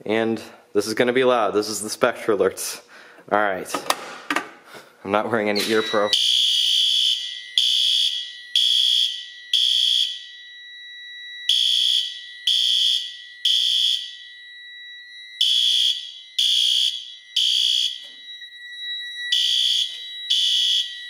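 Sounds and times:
high-pitched alarm horn blasts: 0:05.6 - 0:10.4, 0:14.9 - 0:21.0
steady thin high tone: 0:18.0 - 0:20.3.

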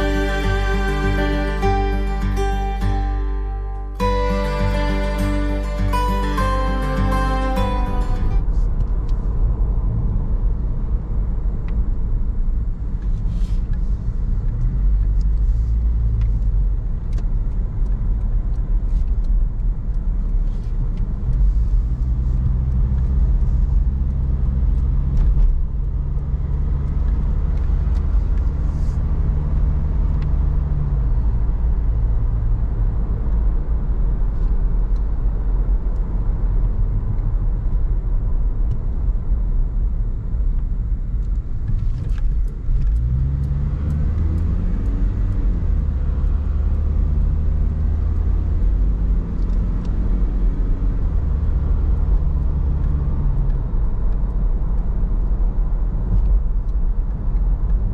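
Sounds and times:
car engine: 0:00.0 - 0:57.9
road rumble: 0:00.0 - 0:57.9.

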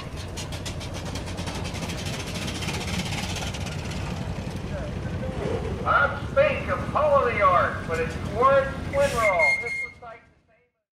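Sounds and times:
steam engine chuffing: 0:00.0 - 0:10.0.

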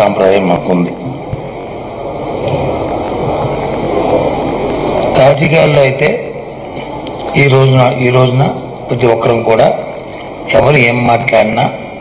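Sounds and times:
steady rushing noise: 0:00.0 - 0:12.0
low hum: 0:00.9 - 0:11.2.

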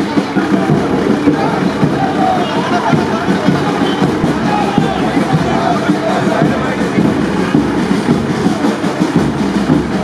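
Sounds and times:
crowd voices: 0:00.0 - 0:10.0
music: 0:00.0 - 0:10.0.

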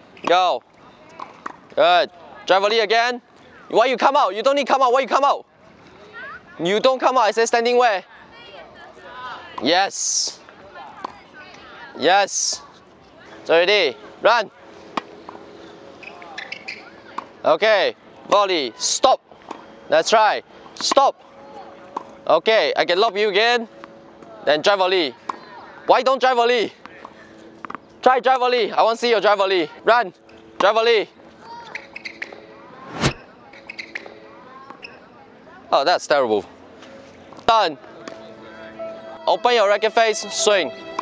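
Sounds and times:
high squeaks: 0:16.0 - 0:17.0, 0:31.6 - 0:34.2
tennis ball struck by racket: 0:32.8 - 0:33.2, 0:38.0 - 0:38.2.

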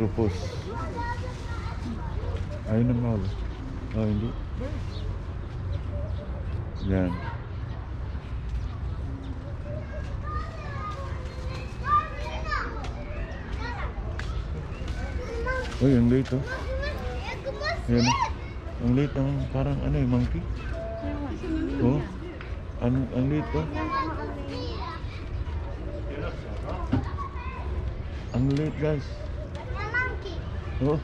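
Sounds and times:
children calling and shouting: 0:00.0 - 0:31.0.

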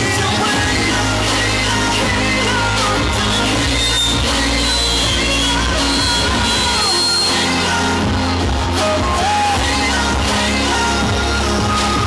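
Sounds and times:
man singing into microphone: 0:00.0 - 0:12.0
pop backing track: 0:00.0 - 0:12.0.

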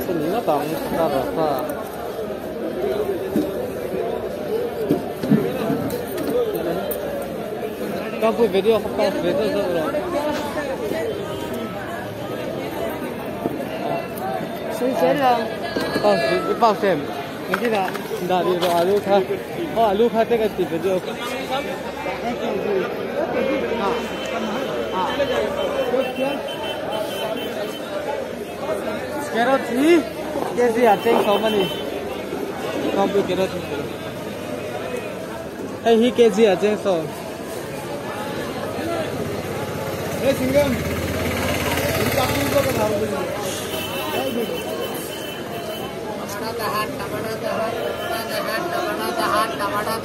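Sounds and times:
people chattering: 0:00.0 - 0:50.0.

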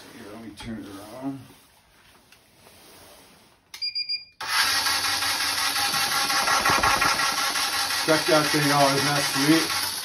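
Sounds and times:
electric ice auger motor running: 0:04.4 - 0:10.0.

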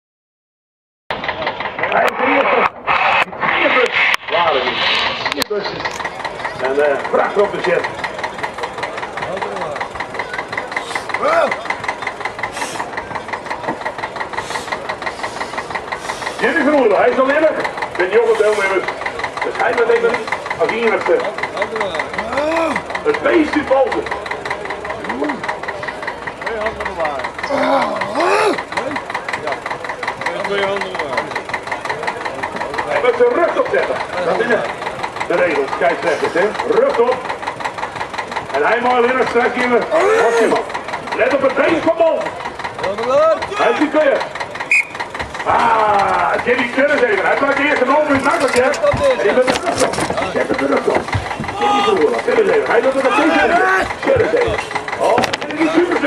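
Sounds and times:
engine running: 0:01.1 - 0:56.0
people talking: 0:01.8 - 0:37.4, 0:38.4 - 0:56.0.

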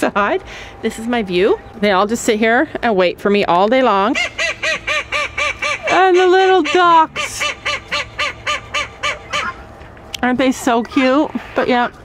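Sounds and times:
duck quacking: 0:04.2 - 0:09.7.

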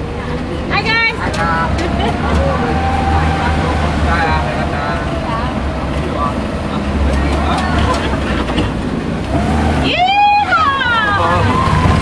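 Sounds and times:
faint voices: 0:00.0 - 0:09.0
vehicle engine rumbling: 0:00.0 - 0:12.0.

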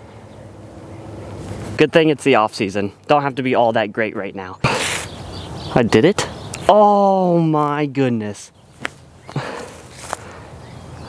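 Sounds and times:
outdoor background hiss: 0:00.0 - 0:11.0
soft footfalls on grass: 0:09.6 - 0:10.3.

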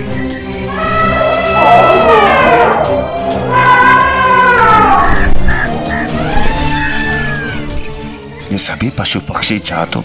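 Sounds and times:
birds crying in alarm: 0:00.0 - 0:08.5
background music score: 0:00.0 - 0:10.0.

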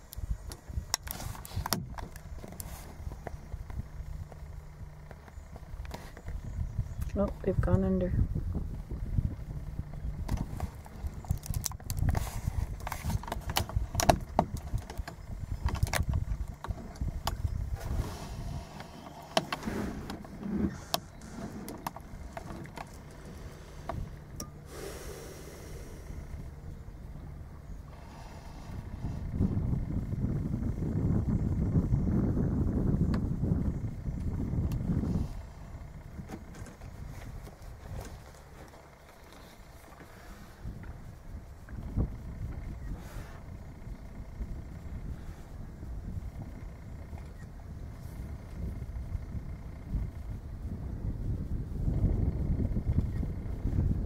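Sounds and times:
paddle knocks and clicks: 0:10.2 - 0:17.4.

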